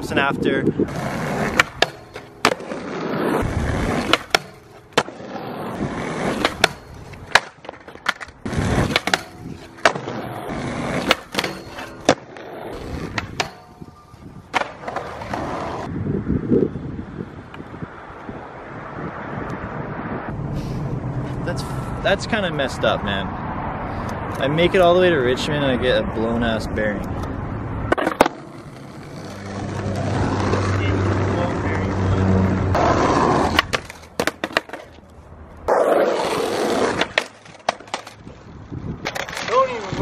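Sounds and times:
skateboard wheels rolling: 0.8 - 15.9, 27.1 - 40.0
skateboard pops and landings: 0.9 - 13.9, 14.5 - 15.9, 27.9 - 28.5, 32.8 - 35.0, 35.7 - 38.2, 39.0 - 39.6.

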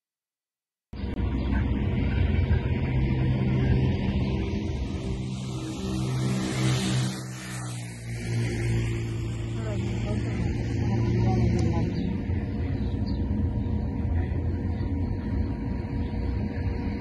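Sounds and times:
vehicle passing: 1.2 - 17.0.

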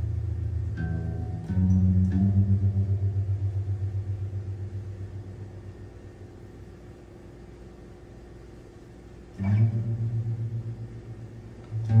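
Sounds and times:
electric guitar low note ringing: 0.0 - 6.3, 9.3 - 12.0.

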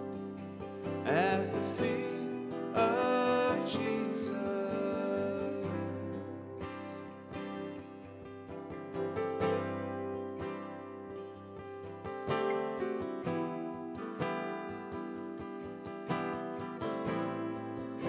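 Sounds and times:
acoustic guitars strumming: 0.0 - 18.0.

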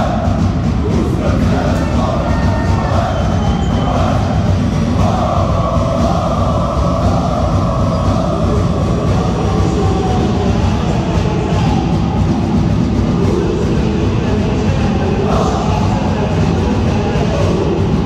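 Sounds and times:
crowd chanting: 0.0 - 18.0.

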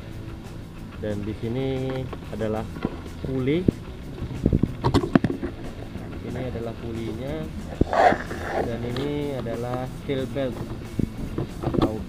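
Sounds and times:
steady low hum: 0.0 - 11.7
light handling knocks and clicks: 10.5 - 12.0.

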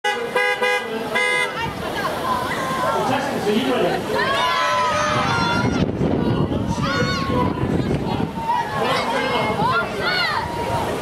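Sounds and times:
vehicle horn tooting: 0.0 - 1.6.

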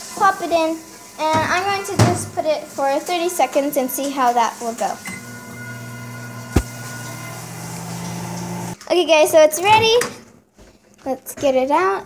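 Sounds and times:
microwave oven humming: 5.0 - 8.8.

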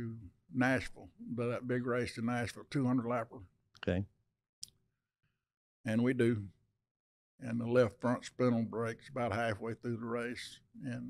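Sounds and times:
man speaking: 0.0 - 4.1, 5.9 - 6.6, 7.4 - 11.0.

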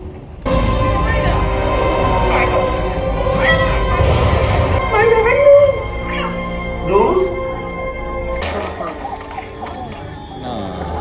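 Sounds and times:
film score music: 0.0 - 11.0
kittens meowing: 4.9 - 6.6.

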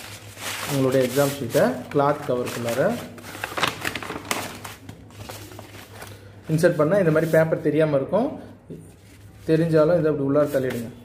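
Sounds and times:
paper rustling and crinkling: 0.0 - 7.8, 8.9 - 9.8, 10.4 - 11.0.

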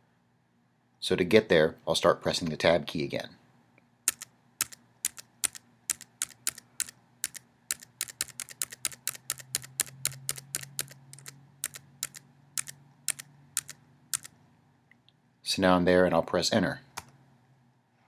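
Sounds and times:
keyboard key clicks: 4.1 - 14.3.

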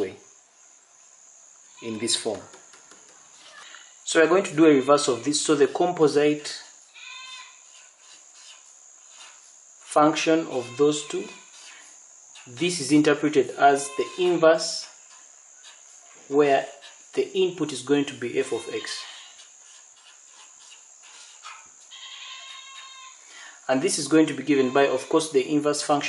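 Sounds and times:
steady high hiss: 0.0 - 26.0
marker pen writing on paper: 7.6 - 9.5, 11.4 - 12.6, 19.4 - 21.6.

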